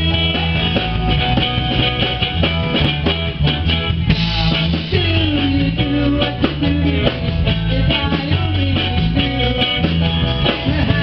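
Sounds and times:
drum kit beat: 0.0s - 11.0s
keyboards: 0.0s - 11.0s
upright bass: 0.0s - 11.0s.

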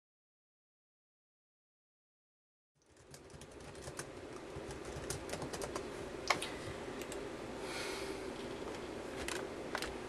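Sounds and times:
steady low hum: 2.8s - 10.0s.

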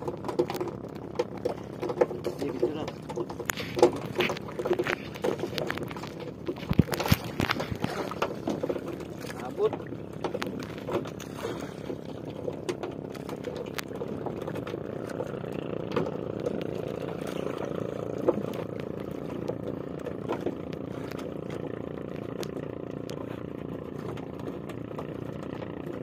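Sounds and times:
boat engine droning: 0.0s - 26.0s.

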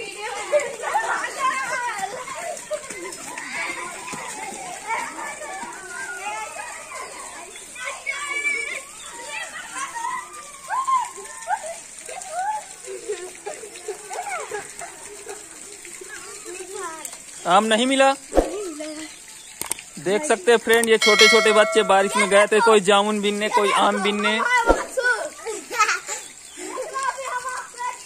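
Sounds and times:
children shouting: 0.0s - 16.9s
children calling and chattering: 0.0s - 28.0s.

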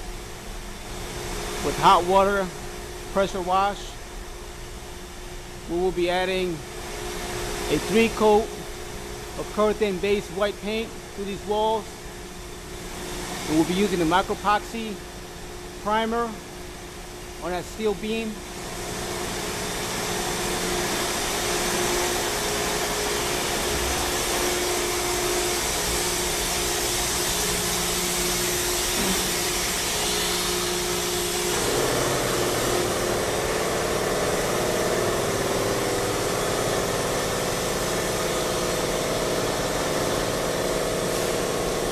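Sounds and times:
machinery hiss and hum: 0.0s - 41.9s.

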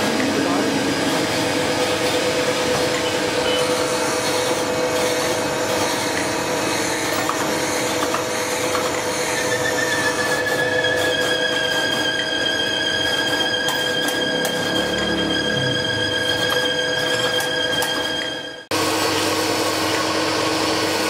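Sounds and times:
grinder grinding metal: 0.0s - 18.6s
machine hum: 0.0s - 21.0s.

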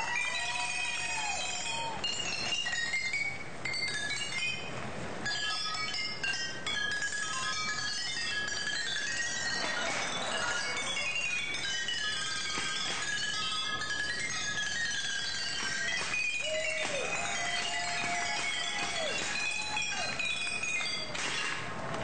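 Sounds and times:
broad rush of noise: 0.0s - 22.0s
glass bottles clinking a tune: 5.3s - 21.4s.

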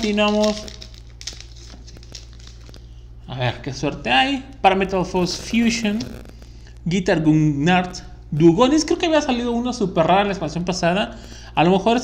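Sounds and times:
foil wrapper crinkling: 0.0s - 3.0s
low steady hum: 0.0s - 12.0s.

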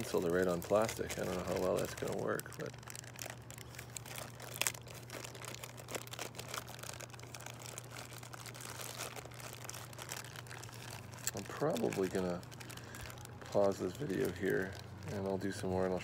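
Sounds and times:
plastic bag crinkling: 0.0s - 16.0s.

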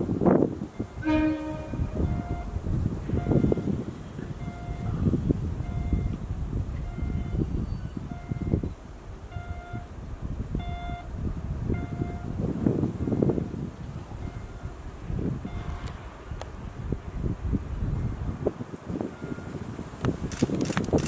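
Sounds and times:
train cars rumbling over track: 0.0s - 21.0s
short electronic beeps: 0.8s - 2.6s, 3.2s - 3.8s, 4.4s - 4.9s.

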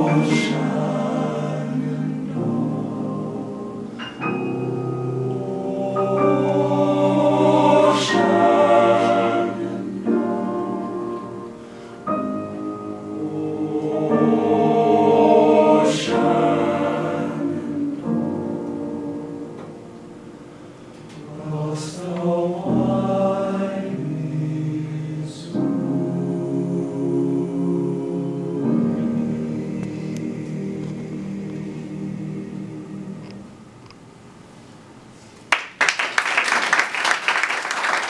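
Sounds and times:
men's choir singing: 0.0s - 19.8s, 21.1s - 33.6s.

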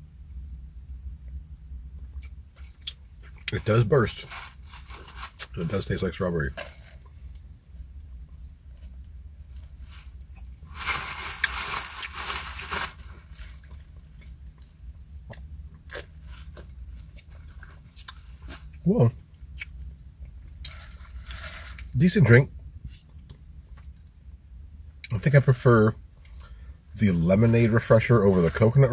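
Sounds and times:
steady low hum: 0.0s - 28.9s.

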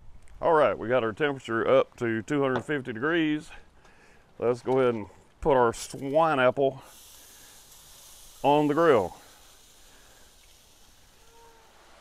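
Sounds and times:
faint outdoor hiss: 0.0s - 12.0s.

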